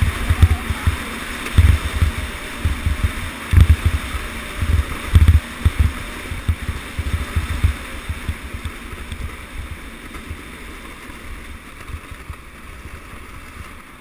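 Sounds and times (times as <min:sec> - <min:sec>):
low thumps: 0:00.0 - 0:08.6
sled sliding over snow: 0:00.0 - 0:14.0.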